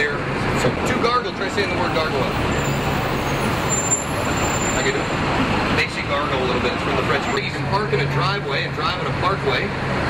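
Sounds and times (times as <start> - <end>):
bus engine and tyres: 0.0 - 10.0
street traffic: 0.0 - 10.0.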